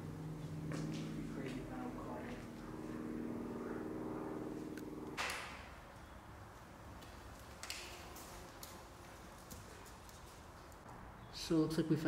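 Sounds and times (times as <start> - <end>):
steady low hum: 0.0 - 11.2.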